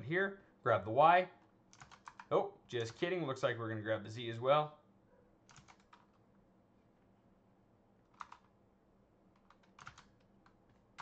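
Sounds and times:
computer keyboard clicks: 1.7 - 3.0, 5.5 - 6.2, 8.1 - 8.6, 9.3 - 11.0.

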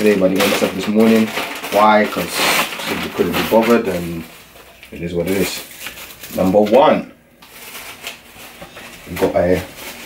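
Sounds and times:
fabric and packaging rustling: 0.0 - 10.0.

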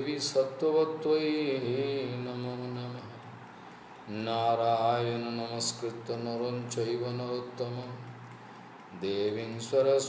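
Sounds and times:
man chanting prayers: 0.0 - 3.4, 4.1 - 8.2, 9.0 - 10.0.

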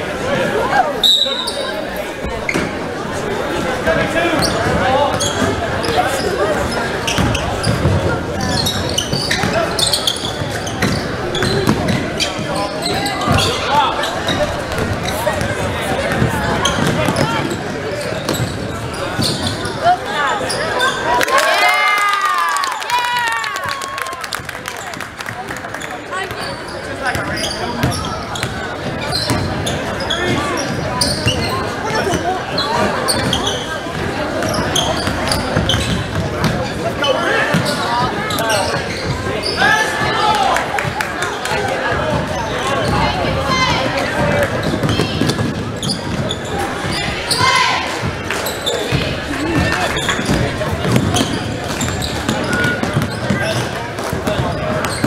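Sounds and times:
basketball bouncing on wooden floor: 48.9 - 55.0.

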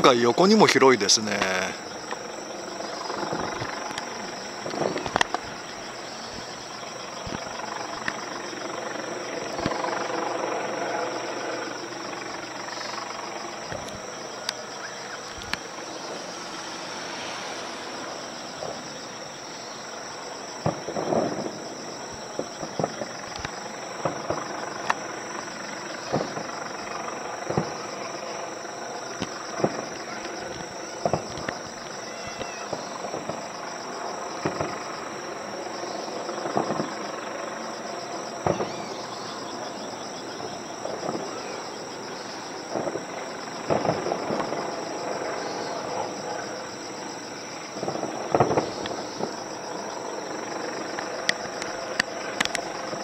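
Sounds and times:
distant fireworks bursting: 0.0 - 53.0
insect chirring: 0.0 - 53.0.

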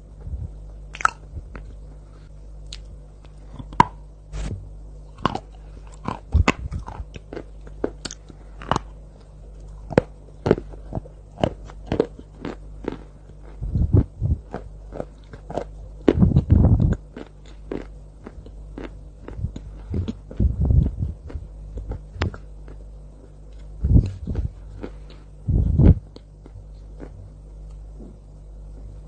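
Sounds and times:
low steady hum: 0.0 - 29.0
chalk crunching being chewed: 5.1 - 25.3, 26.0 - 27.8.

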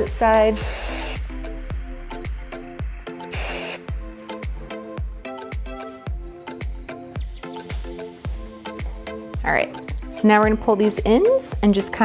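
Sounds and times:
hairspray can hissing: 0.0 - 1.6, 3.1 - 4.5
music with steady beat: 0.0 - 12.0.

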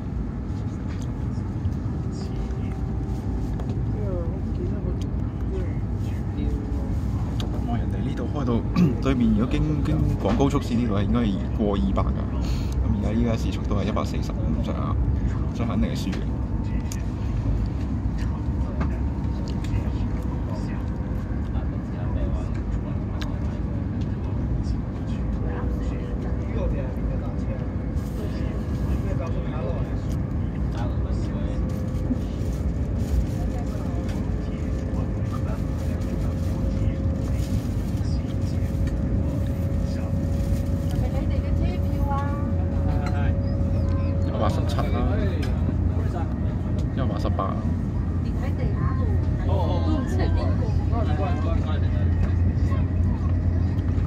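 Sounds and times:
thin steady whine: 0.0 - 54.0.

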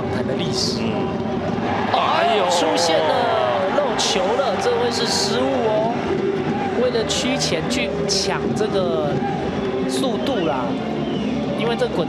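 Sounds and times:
ballpark crowd noise: 0.0 - 12.0
man commentating: 1.9 - 6.0.

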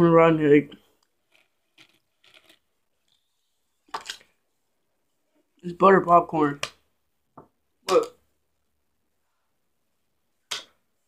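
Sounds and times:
jelly bean being chewed: 1.0 - 3.2.

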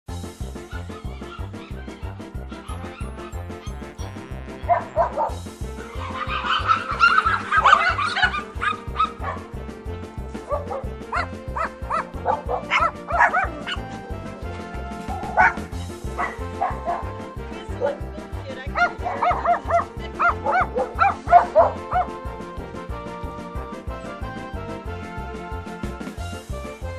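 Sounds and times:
background music with steady beat: 0.1 - 26.9
small dogs yipping: 0.6 - 4.1, 4.7 - 9.5, 10.5 - 14.1, 14.7 - 17.2, 18.8 - 22.1.

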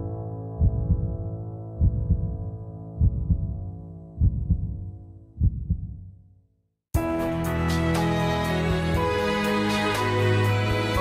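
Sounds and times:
heartbeat double thumps: 0.6 - 1.2, 1.8 - 2.4, 3.0 - 3.6, 4.2 - 6.1.

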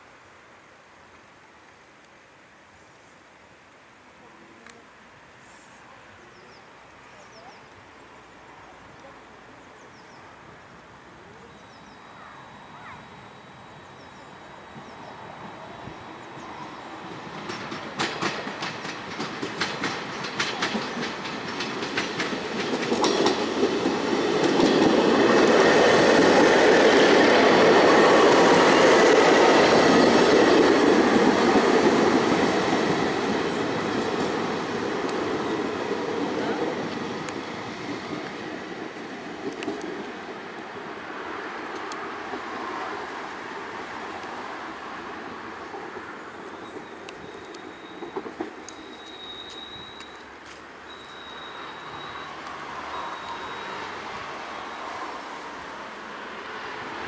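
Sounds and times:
diesel railbus passing: 5.0 - 57.0
wheels clicking over rail joints: 14.8 - 40.9, 45.5 - 51.2.

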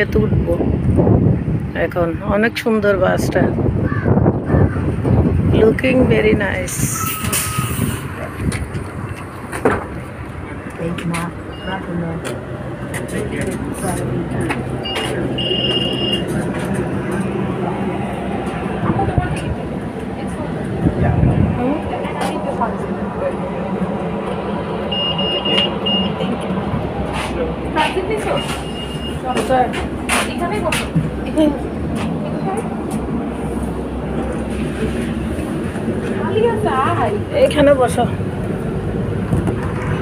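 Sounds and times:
bus engine idling: 0.0 - 40.0
passenger stepping aboard: 7.1 - 40.0
high electronic beeps: 11.5 - 11.9, 14.8 - 16.3, 24.9 - 26.2, 28.3 - 29.5.

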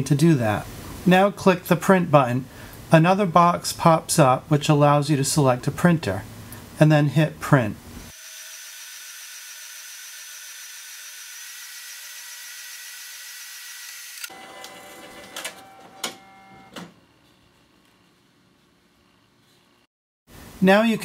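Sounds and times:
inkjet printer printing: 14.2 - 16.9.

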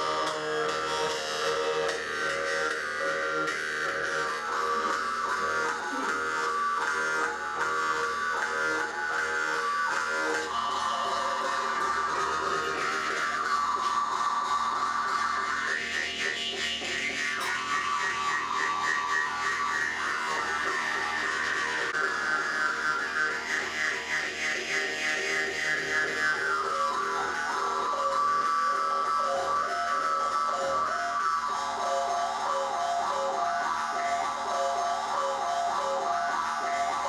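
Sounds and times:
steady held tones: 0.0 - 23.7.

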